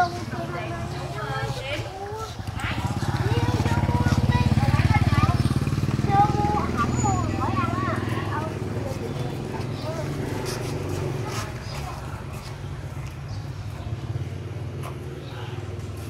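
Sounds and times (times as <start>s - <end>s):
small motorbike engine passing: 0.0s - 16.0s.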